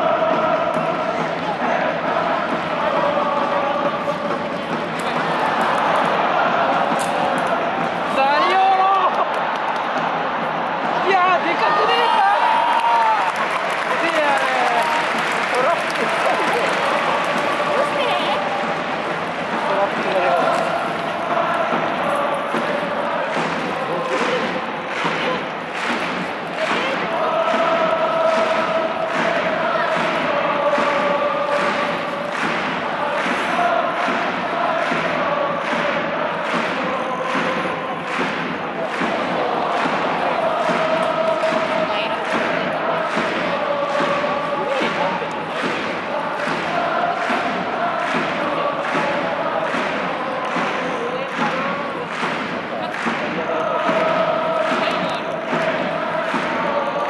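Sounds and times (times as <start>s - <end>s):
crowd chanting in unison: 0.0s - 57.0s
drum beat: 0.0s - 57.0s
people clapping: 0.0s - 57.0s.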